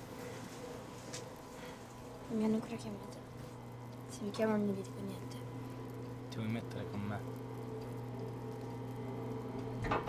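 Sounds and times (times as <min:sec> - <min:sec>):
steady low hum with overtones: 0:00.0 - 0:10.0.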